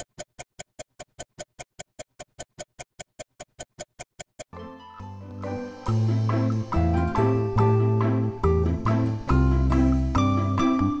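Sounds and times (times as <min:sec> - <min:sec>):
clock ticking fast: 0:00.0 - 0:04.6.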